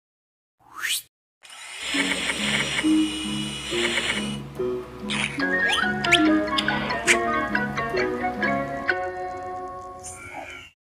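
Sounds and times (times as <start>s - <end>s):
cartoon upward sweeping tone: 0.6s - 1.1s
rising hiss: 1.5s - 4.4s.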